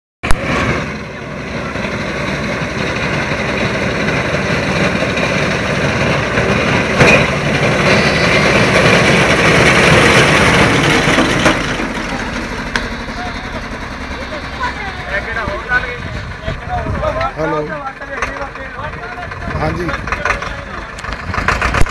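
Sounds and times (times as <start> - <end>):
engine running: 0.2 - 21.9.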